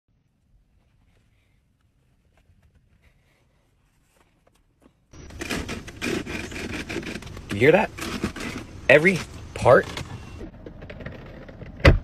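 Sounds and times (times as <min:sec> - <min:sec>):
plastic trim creaking and rattling: 0:05.3 - 0:12.0.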